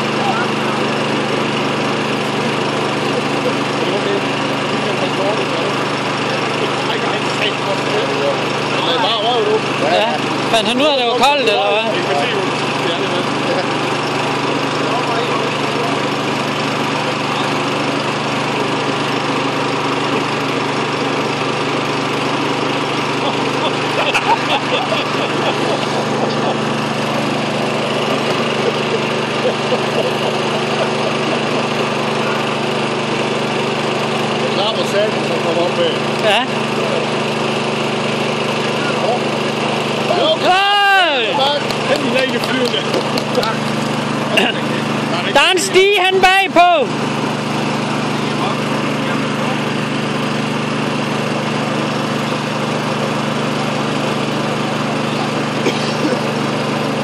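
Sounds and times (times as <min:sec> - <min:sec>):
engine drone: 0:00.0 - 0:57.0.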